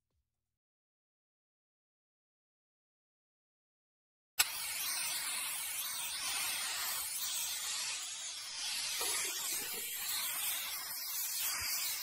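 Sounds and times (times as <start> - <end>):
spray-paint can hissing: 4.4 - 12.0.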